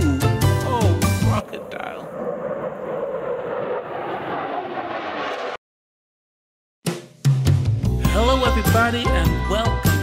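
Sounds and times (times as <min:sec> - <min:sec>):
cartoon jet engine rushing: 0:01.2 - 0:05.6.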